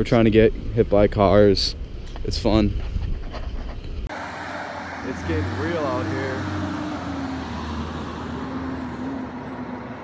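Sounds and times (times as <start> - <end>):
traffic noise: 0.0 - 10.0.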